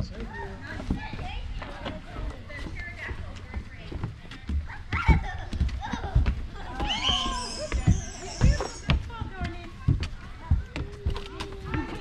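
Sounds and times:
footsteps on hard path: 0.0s - 12.0s
indistinct voices: 0.0s - 12.0s.

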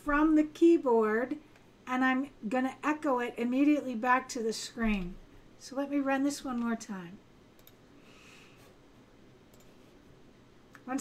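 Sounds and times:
computer keys clicking: 7.6s - 7.8s, 9.5s - 9.8s.

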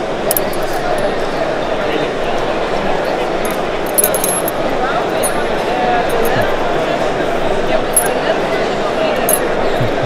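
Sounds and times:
crowd chatter: 0.0s - 10.0s
metal ring clinking: 0.3s - 1.3s, 3.0s - 6.6s, 7.9s - 8.2s, 9.2s - 10.0s.

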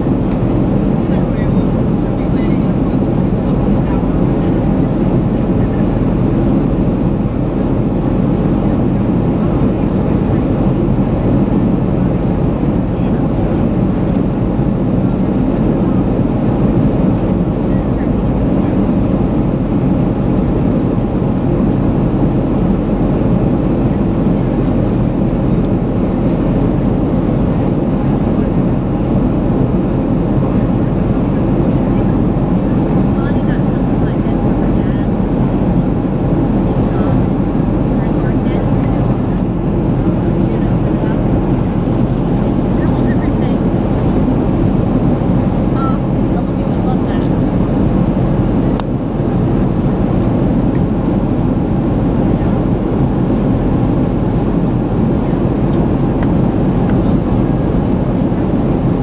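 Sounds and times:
jet engine low rumble: 0.0s - 59.0s
rushing airflow: 0.0s - 59.0s.

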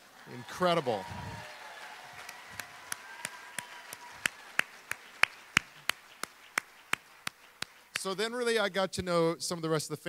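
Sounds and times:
person clapping hands: 0.8s - 8.2s.

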